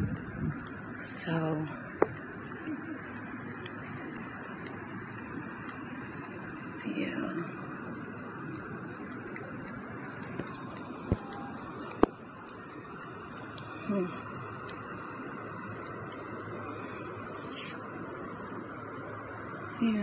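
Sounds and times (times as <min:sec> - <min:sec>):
traffic hum: 0:00.0 - 0:20.0.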